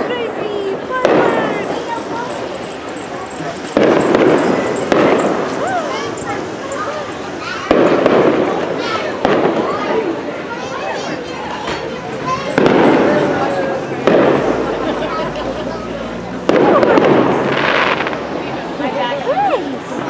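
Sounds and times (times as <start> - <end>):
fireworks booming: 0.0 - 6.4, 7.1 - 10.3, 11.6 - 18.5.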